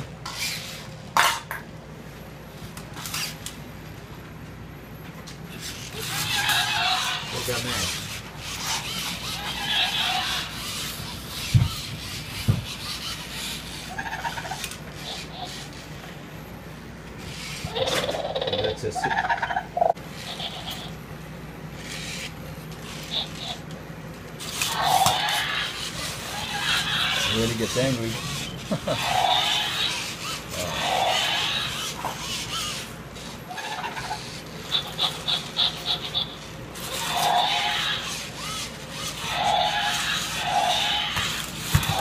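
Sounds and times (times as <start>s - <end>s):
toy robot motors whirring: 0.0s - 1.4s, 2.8s - 3.6s, 5.5s - 16.1s, 17.2s - 19.1s, 19.8s - 21.0s, 21.7s - 42.0s.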